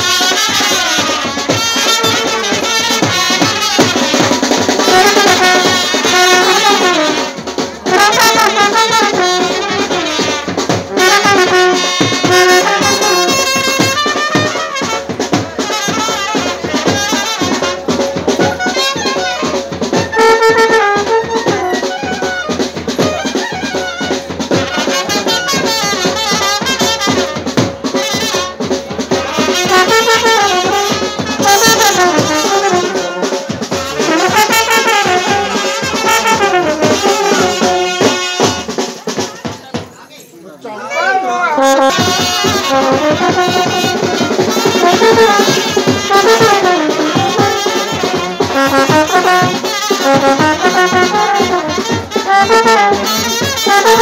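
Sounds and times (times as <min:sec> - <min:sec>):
clarinet and trumpet melody: 0:00.0 - 0:39.0, 0:40.9 - 0:54.0
drums: 0:00.0 - 0:40.3, 0:40.9 - 0:54.0
wedding band playing dance tune: 0:00.0 - 0:54.0.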